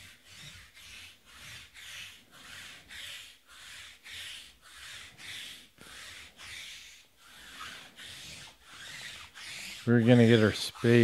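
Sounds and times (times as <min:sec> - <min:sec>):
lint roller rolling on cloth: 0:00.0 - 0:11.0.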